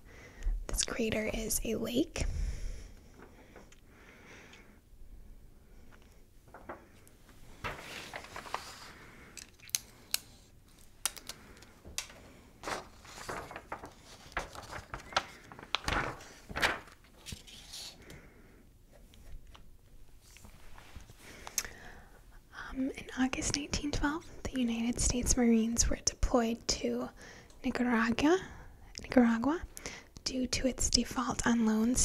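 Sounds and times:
papers being handled: 0:06.4 - 0:18.0.

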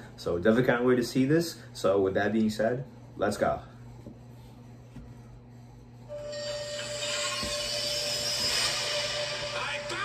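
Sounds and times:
steady room hum: 0:00.0 - 0:10.0
eerie hissing drone soundtrack: 0:06.7 - 0:10.0.

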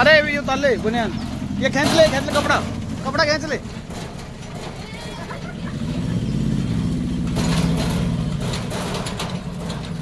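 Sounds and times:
truck engine pulling away: 0:00.0 - 0:10.0.

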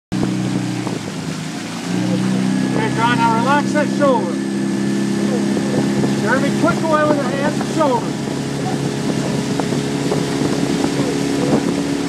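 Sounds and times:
outboard motor humming: 0:00.1 - 0:12.0
wind and water hiss: 0:00.2 - 0:12.0.

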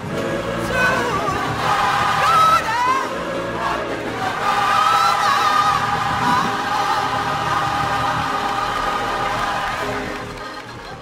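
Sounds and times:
gospel choir singing: 0:00.0 - 0:10.6.

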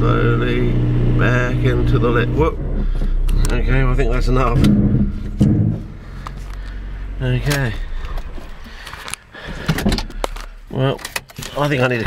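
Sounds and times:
car engine idling: 0:00.0 - 0:12.0
clicks and knocks in car cabin: 0:07.4 - 0:12.0.

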